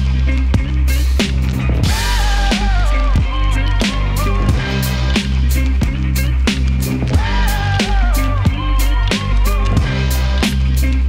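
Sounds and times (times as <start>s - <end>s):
live electronic funk music: 0.0s - 11.0s.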